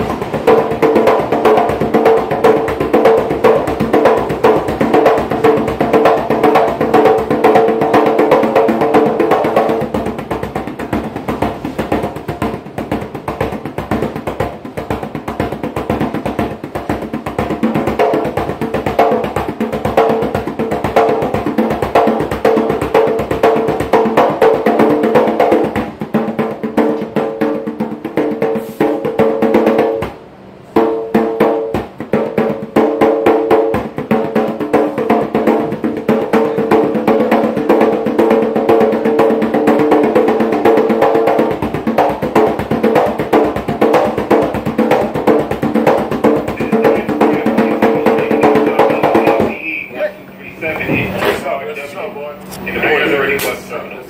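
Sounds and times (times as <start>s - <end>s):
hand drum played fast: 0.0s - 30.2s, 30.8s - 49.9s.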